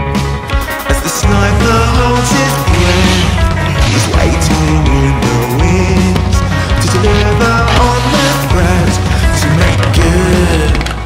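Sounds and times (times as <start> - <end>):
loud rock music: 0.0 - 11.0.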